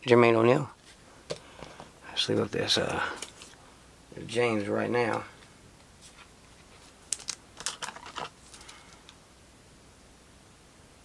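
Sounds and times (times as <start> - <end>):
trading cards clicking: 7.1 - 9.2.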